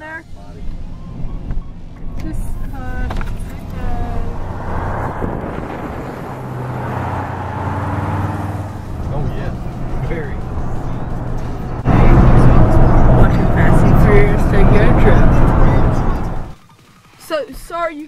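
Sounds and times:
car road and engine noise: 0.0s - 17.7s
indistinct voices: 2.2s - 16.6s.

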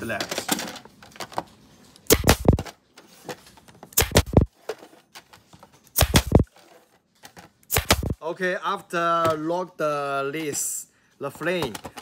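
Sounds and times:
pneumatic driver firing clacks: 4.0s - 4.4s, 6.0s - 6.4s.

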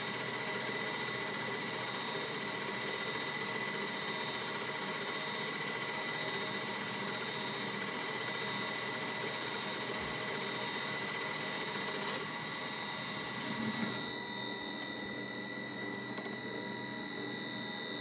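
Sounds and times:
metal lathe whining: 0.0s - 18.0s.

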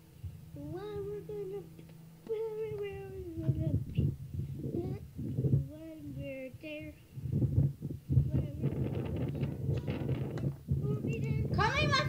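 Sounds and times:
child half singing: 0.5s - 7.0s, 8.1s - 9.4s, 10.7s - 12.0s.

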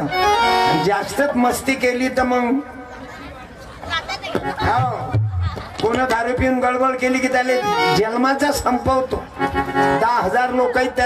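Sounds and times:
music: 0.0s - 1.2s, 7.2s - 11.0s
man speaking: 10.0s - 11.0s.

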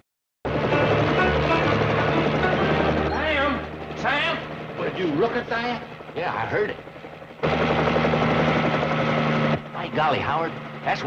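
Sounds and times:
helicopter rotor and engine thrum: 0.5s - 11.0s.

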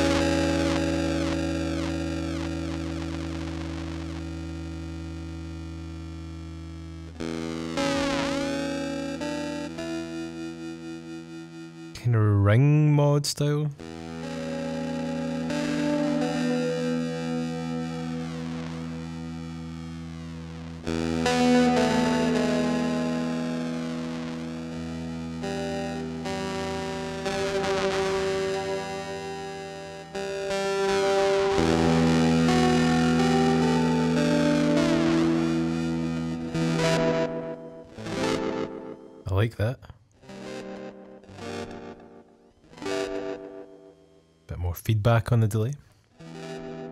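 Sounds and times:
distorted electric guitar chords: 0.0s - 44.6s, 45.6s - 46.9s.

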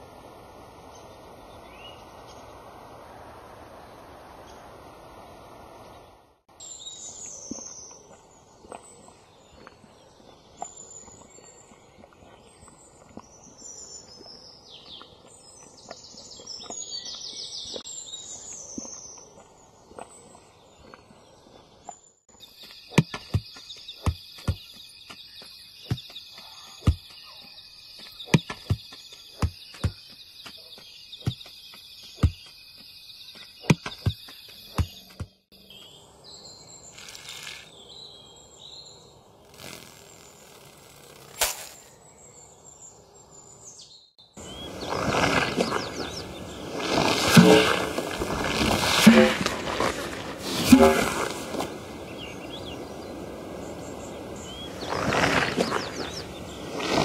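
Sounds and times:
footstep-like knocks: 22.9s - 26.2s, 28.0s - 30.6s, 31.2s - 35.4s
heavy thumps: 47.2s - 51.7s.

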